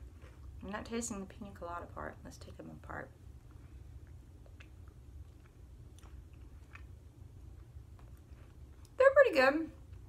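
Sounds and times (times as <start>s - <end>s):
chewing crisp cookie: 0.0s - 10.0s
low steady hum: 0.0s - 10.0s.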